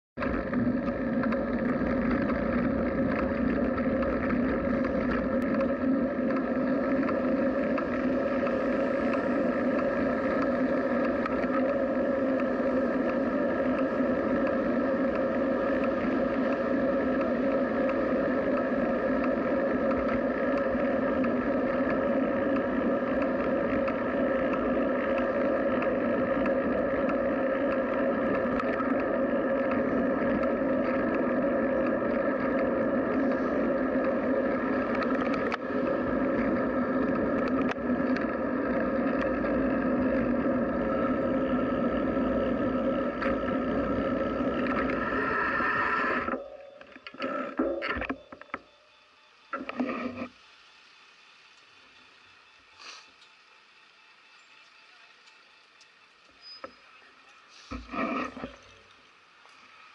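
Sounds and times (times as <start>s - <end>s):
bicycle road noise: 0.2s - 59.9s
low humming drone: 0.2s - 59.9s.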